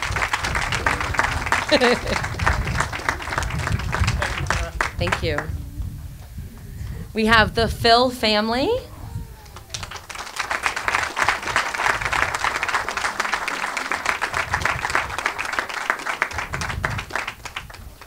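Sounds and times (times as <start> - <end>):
audience applauding: 0.0 - 5.6, 9.3 - 18.0.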